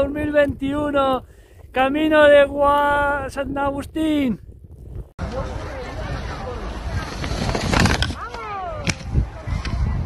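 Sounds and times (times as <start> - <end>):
people's voices: 5.2 - 10.0.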